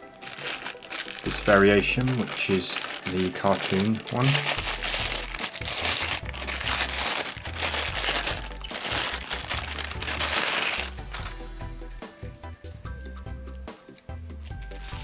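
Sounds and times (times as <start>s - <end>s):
plastic bag crinkling: 0.0s - 11.4s, 14.5s - 15.0s.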